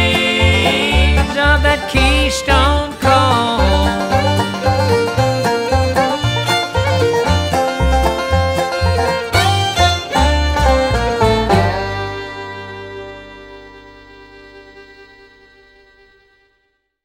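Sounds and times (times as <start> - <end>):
bluegrass band playing: 0.0 - 16.5
bass notes: 0.0 - 16.6.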